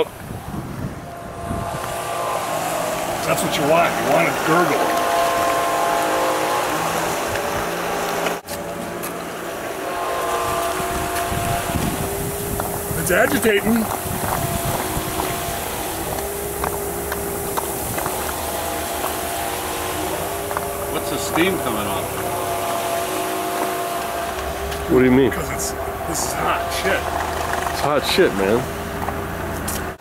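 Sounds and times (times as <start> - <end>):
faint machine hum: 0.0 - 29.7
brine churning and gurgling: 1.0 - 8.4, 9.5 - 29.0.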